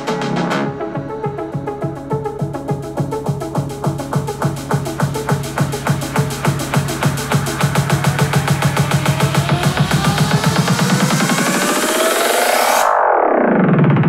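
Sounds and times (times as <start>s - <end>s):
electronic dance music: 0.0s - 14.0s.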